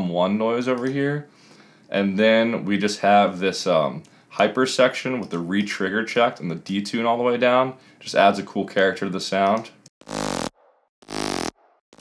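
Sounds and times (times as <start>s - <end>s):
buzzy synth bass notes: 10.0s - 12.0s.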